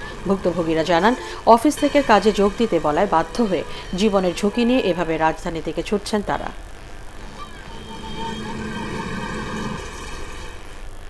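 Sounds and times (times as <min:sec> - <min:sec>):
road traffic: 0:00.0 - 0:04.8, 0:07.2 - 0:10.7
vehicle engine running: 0:00.0 - 0:05.6.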